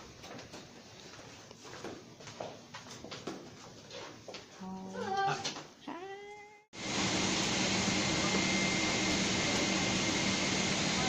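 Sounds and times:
airliner cabin noise: 6.8s - 11.0s.

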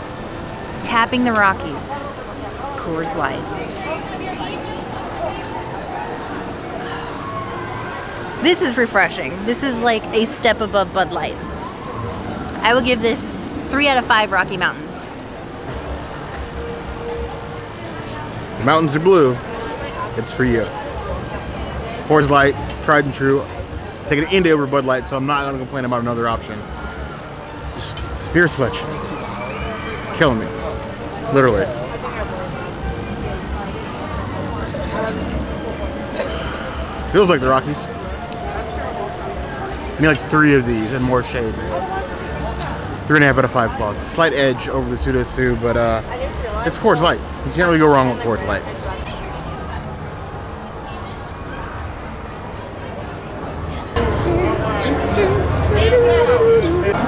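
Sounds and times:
faint distant voices: 0.0s - 57.0s
outdoor background noise: 0.0s - 57.0s.

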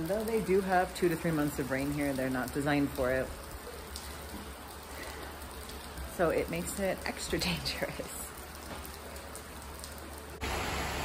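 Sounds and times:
heavy rain hissing: 0.0s - 11.0s.

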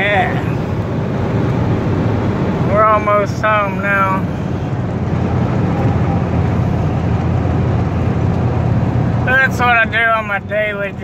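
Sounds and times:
tyre and engine rumble: 0.0s - 11.0s.

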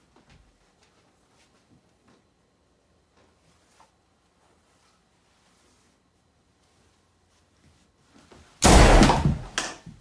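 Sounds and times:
loud bang with clatter: 8.6s - 9.7s.

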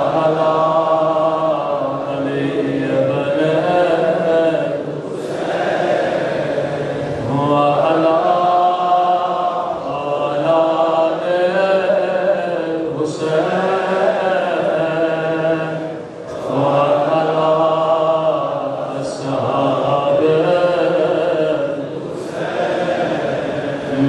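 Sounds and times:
man chanting into a microphone: 0.0s - 24.0s.

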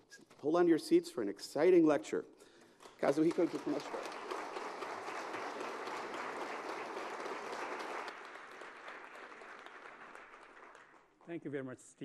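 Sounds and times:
audience applauding: 2.8s - 11.2s.

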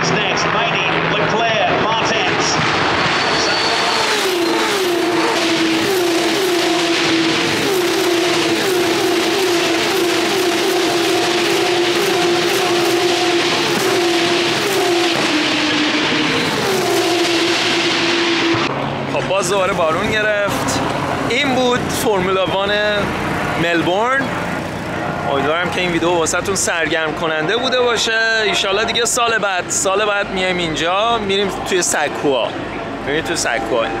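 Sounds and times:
racing cars passing at speed: 0.0s - 28.6s.

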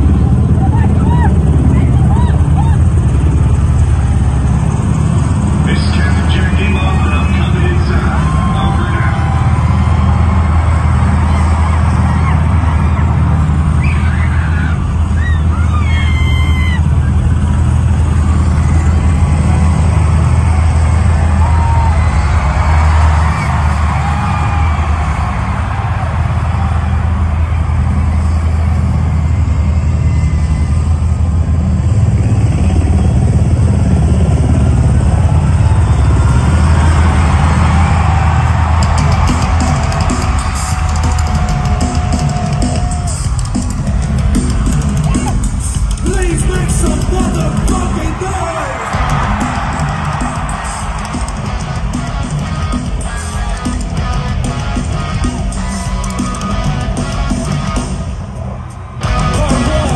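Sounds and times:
crowd screaming and whistling: 0.0s - 59.9s
low rumble over sound system: 0.0s - 59.9s
fast ticking beat: 38.5s - 58.0s.

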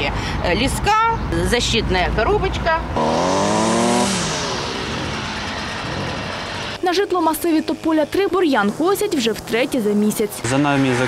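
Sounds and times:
string trimmer engine running: 3.0s - 10.5s.

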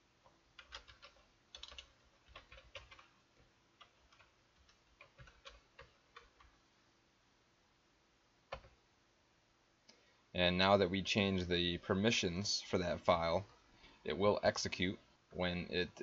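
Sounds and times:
computer keyboard keystrokes: 0.6s - 3.1s, 3.8s - 6.6s, 8.5s - 8.8s.

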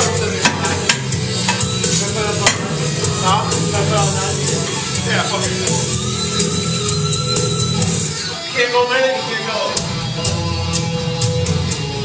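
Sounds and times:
music playing: 0.0s - 12.0s.

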